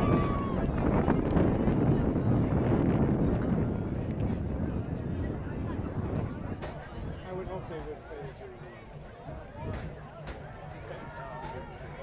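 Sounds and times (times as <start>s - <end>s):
wind rumbling on microphone: 0.0s - 7.8s
faint distant voices: 0.0s - 12.0s.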